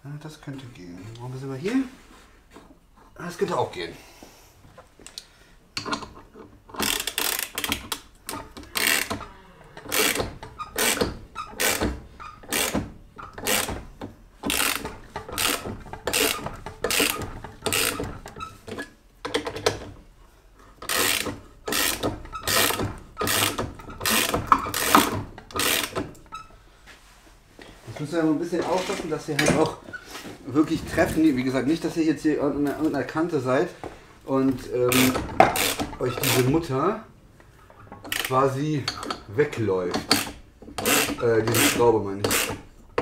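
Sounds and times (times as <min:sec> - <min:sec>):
ratchet clicking: 0:06.7 - 0:09.2, 0:09.9 - 0:13.8, 0:14.4 - 0:18.4, 0:20.8 - 0:26.0, 0:34.9 - 0:36.5, 0:38.0 - 0:38.3, 0:40.0 - 0:43.0.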